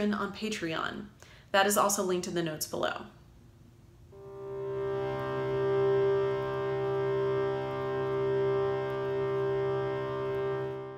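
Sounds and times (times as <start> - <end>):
reed drone on held notes: 4.0 - 10.9.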